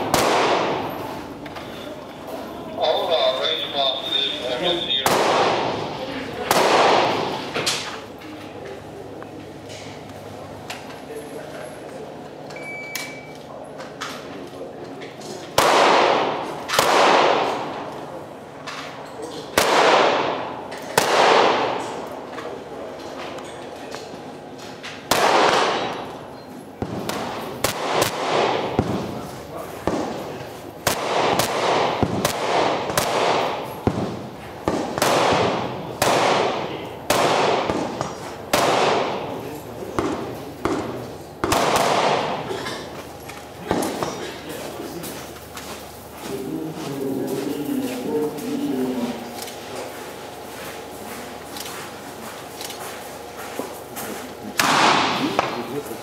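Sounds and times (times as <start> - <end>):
rifle shots with echo: 0.0 - 0.9, 4.9 - 7.5, 15.6 - 17.9, 19.5 - 22.0, 25.1 - 26.1, 26.8 - 29.2, 30.8 - 39.4, 40.0 - 42.5, 54.6 - 55.6.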